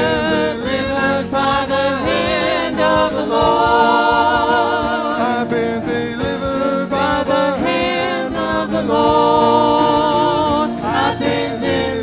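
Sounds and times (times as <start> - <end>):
drums: 0.0 - 12.0
electric guitars: 0.0 - 12.0
keyboard: 0.0 - 12.0
singers: 0.0 - 12.0.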